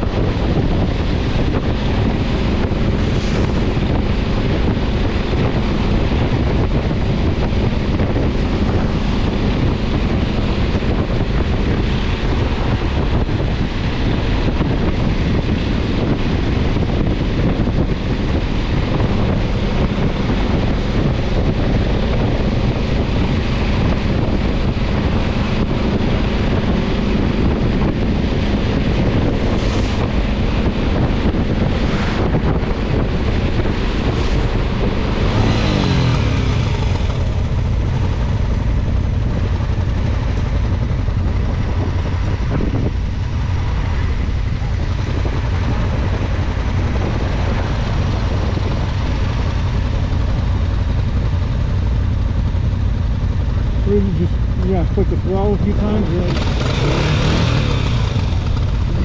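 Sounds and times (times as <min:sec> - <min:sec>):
motorcycle engine: 0:00.0 - 0:59.0
wind noise on microphone: 0:00.0 - 0:59.0.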